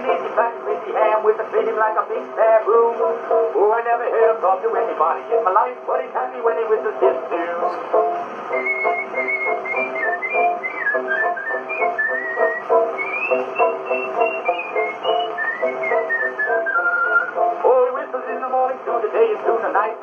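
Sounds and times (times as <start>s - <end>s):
instrumental accompaniment: 0.0s - 20.0s
record surface hiss: 0.0s - 20.0s
man whistling a melody: 8.5s - 17.6s.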